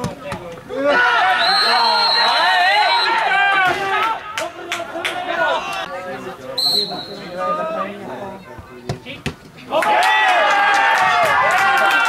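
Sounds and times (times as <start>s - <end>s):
crowd shouting: 0.7s - 8.1s, 9.7s - 12.0s.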